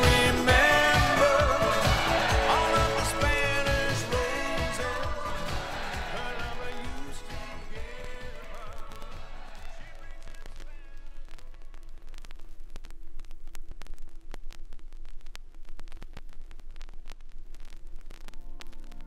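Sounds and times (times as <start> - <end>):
song on vinyl record: 0.0 - 19.0
vinyl surface crackle and clicks: 5.0 - 19.0.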